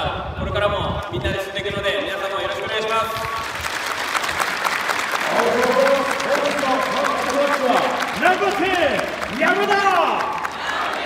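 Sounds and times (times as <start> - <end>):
crowd clapping: 2.7 - 11.0
voices: 5.3 - 11.0.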